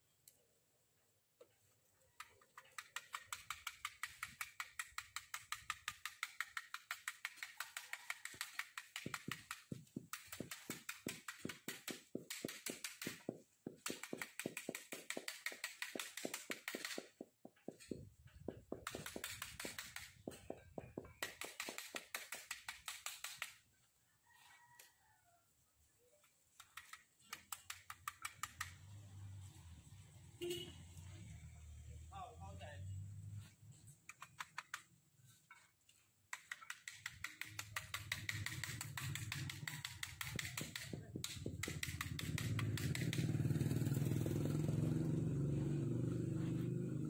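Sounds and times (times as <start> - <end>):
paintbrush tapping on stick: 2.6 - 23.5, 36.3 - 43.2.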